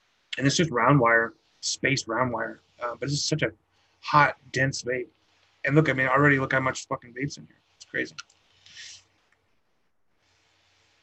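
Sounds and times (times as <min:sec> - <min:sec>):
airy hiss of vape drag: 0:07.8 - 0:09.2, 0:10.2 - 0:11.0.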